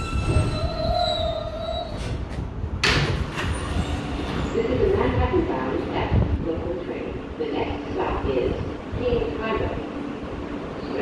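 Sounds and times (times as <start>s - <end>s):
train low hum: 0.0s - 11.0s
recorded voice announcement: 4.6s - 9.9s.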